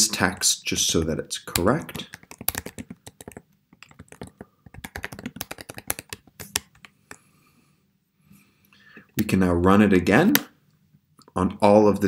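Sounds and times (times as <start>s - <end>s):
typing on computer keyboard: 1.6s - 6.9s.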